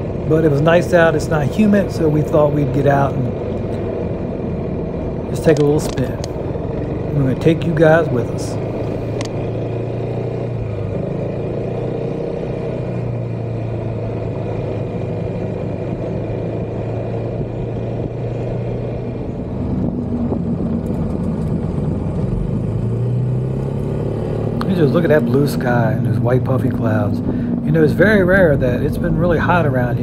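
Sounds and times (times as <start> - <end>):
scooter engine running: 0.0 - 30.0.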